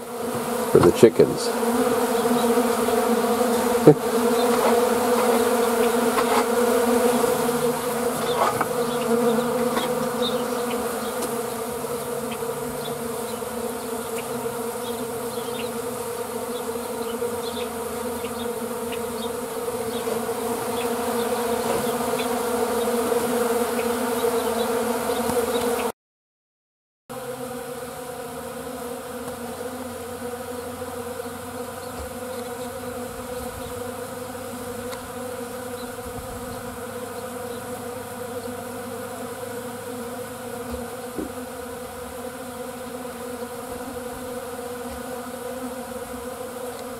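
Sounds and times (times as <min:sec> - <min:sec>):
honeybees buzzing: 0:00.0 - 0:26.0, 0:27.1 - 0:46.9.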